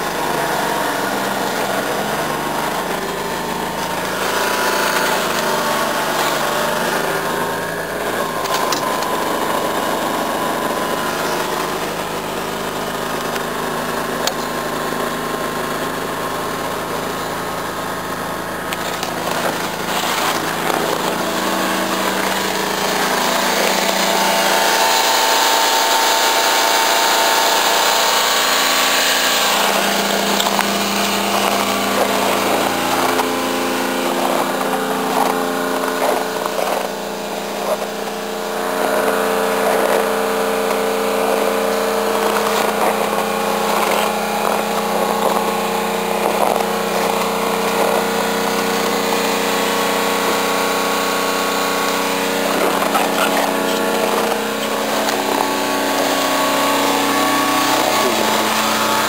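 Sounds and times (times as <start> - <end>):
small truck engine running: 0.0 - 59.0.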